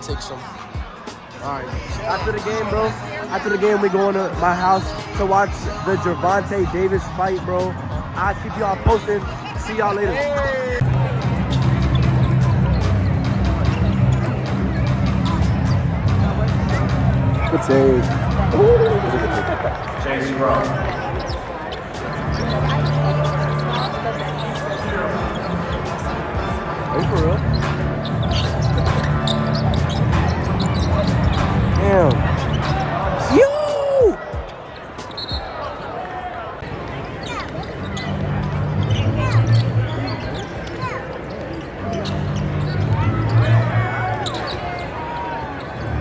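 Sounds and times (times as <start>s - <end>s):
arena music: 0.0s - 35.1s
crowd chatter: 0.0s - 46.0s
shoe squeak: 11.5s - 16.0s, 18.6s - 33.2s, 34.3s - 36.0s, 36.9s - 46.0s.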